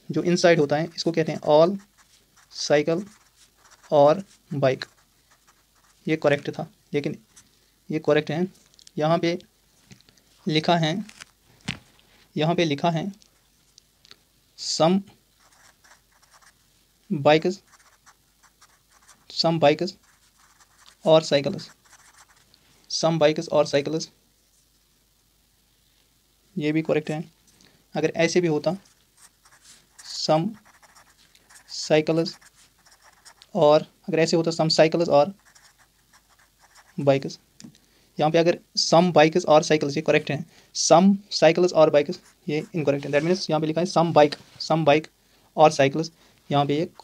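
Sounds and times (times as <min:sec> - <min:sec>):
marker pen scratching on paper: 0:00.6 - 0:06.1, 0:15.4 - 0:16.6, 0:17.5 - 0:22.5, 0:28.7 - 0:33.6, 0:35.3 - 0:37.0, 0:42.1 - 0:43.4.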